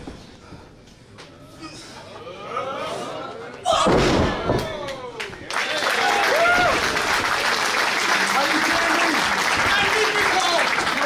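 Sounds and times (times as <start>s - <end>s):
crowd shouting: 6.0s - 6.8s.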